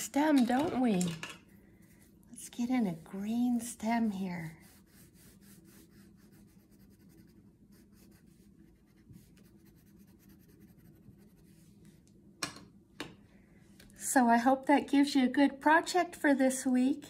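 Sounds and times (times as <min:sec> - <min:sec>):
crayon scribbling on paper: 0:02.4 - 0:11.5.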